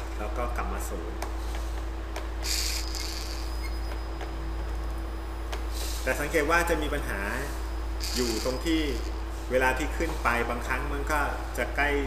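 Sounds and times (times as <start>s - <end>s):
low electrical hum: 0.0s - 12.0s
small geared motor whirring: 2.4s - 3.8s, 8.0s - 9.1s.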